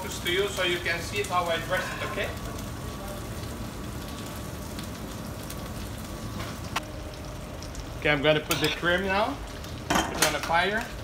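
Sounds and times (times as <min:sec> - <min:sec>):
pans hissing on gas range: 0:00.0 - 0:11.0.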